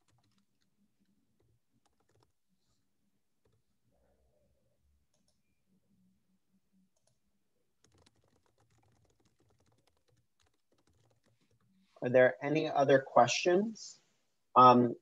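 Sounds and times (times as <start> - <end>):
keyboard typing clicks: 0.0 - 0.7, 1.4 - 2.3, 7.8 - 11.7.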